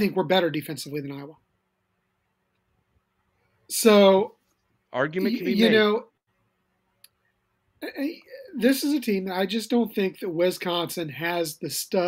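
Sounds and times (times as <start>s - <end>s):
man speaking: 0.0s - 1.4s, 3.7s - 6.2s, 7.8s - 12.0s.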